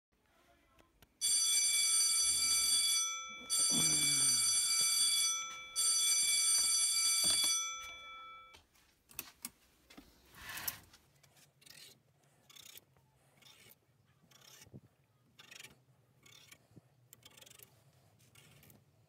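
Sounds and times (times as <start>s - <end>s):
shrill electronic alarm tone: 1.2s - 8.5s.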